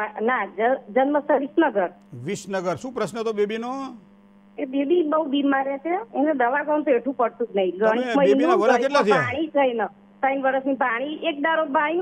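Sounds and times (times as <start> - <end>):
electrical mains hum: 1.0 - 10.4
person talking on phone line: 2.2 - 4.0, 7.8 - 9.4.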